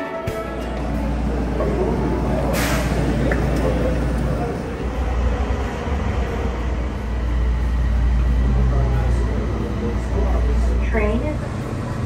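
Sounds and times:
vehicle engine rumble: 0:00.3 - 0:12.0
faint voices: 0:00.6 - 0:11.9.

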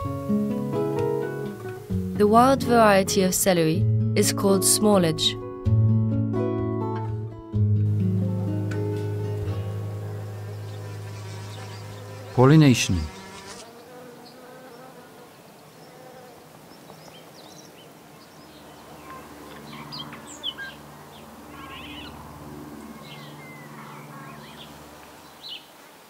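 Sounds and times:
bee buzzing: 0:09.2 - 0:16.8.

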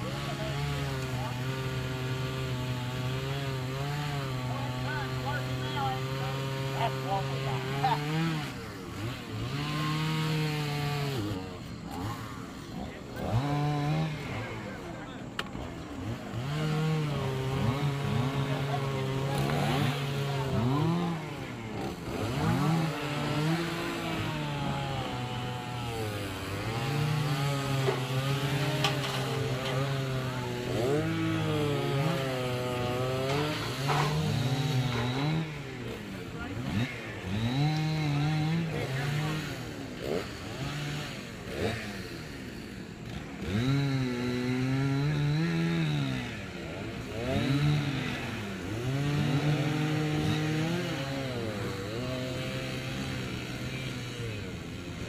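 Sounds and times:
chainsaw cutting at high revs: 0:00.0 - 0:55.0.

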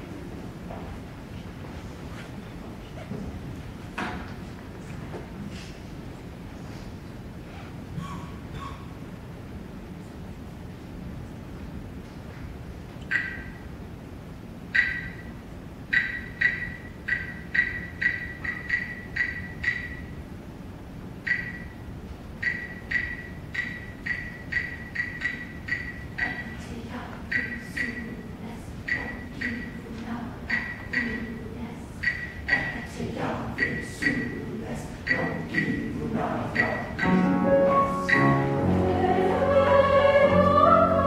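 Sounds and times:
wood block clicks: 0:13.0 - 0:13.6, 0:15.9 - 0:20.0, 0:22.4 - 0:26.5, 0:30.5 - 0:31.2, 0:32.0 - 0:32.8.

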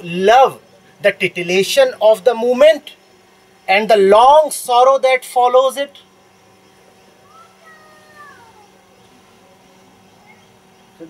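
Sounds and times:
steady low hum: 0:00.0 - 0:11.0
faint animal call: 0:07.2 - 0:09.2, 0:10.1 - 0:10.6.

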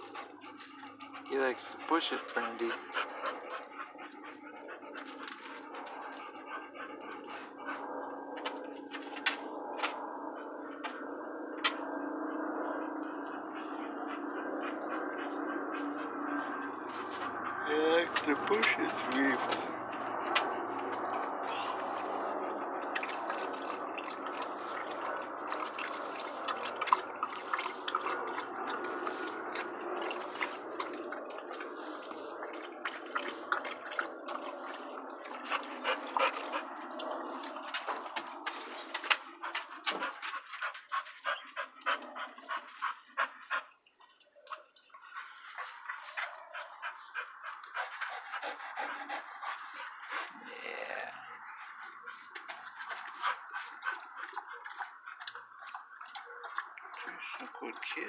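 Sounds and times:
dog panting: 0:00.0 - 0:58.0.

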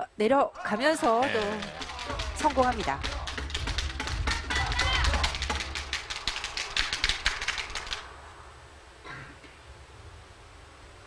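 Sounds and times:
people calling out: 0:00.5 - 0:03.4, 0:04.3 - 0:05.5
audience applause: 0:00.8 - 0:08.1
low hiss: 0:06.2 - 0:11.0.

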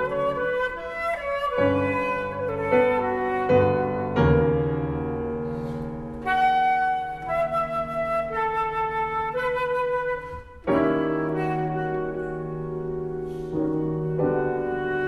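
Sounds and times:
flute melody: 0:00.0 - 0:15.0
piano chords: 0:00.0 - 0:15.0.

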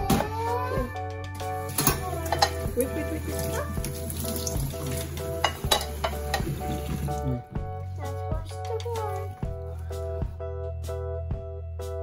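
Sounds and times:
background music: 0:00.0 - 0:12.0
tap water running: 0:01.5 - 0:07.4
dishes clinking in a steel sink: 0:01.7 - 0:02.8, 0:04.4 - 0:07.1.

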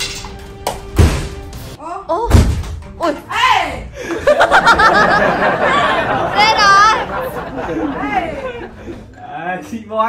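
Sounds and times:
people chattering and laughing: 0:04.0 - 0:09.2.

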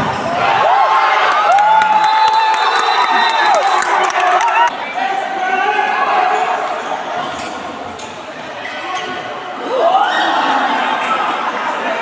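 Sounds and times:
spectators' voices echoing: 0:00.0 - 0:12.0.

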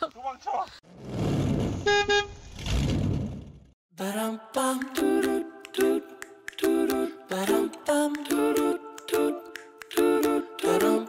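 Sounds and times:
car driving off rushing: 0:00.9 - 0:03.7
car horn double toot: 0:01.8 - 0:02.4.

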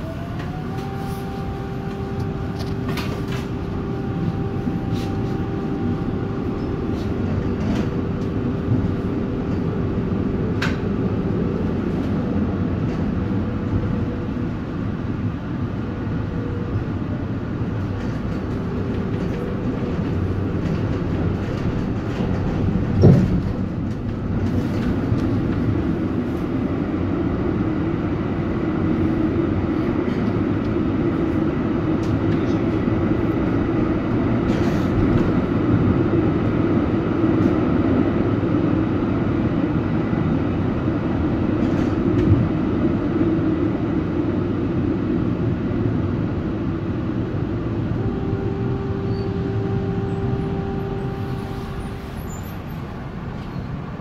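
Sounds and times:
hum: 0:00.0 - 0:37.2, 0:42.7 - 0:53.1
tram wheels and motors rumbling: 0:00.0 - 0:54.0.

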